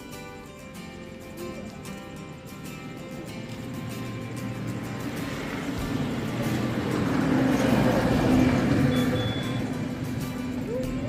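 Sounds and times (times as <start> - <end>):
guitar music: 0.0 - 11.0
motor vehicle passing: 0.9 - 11.0.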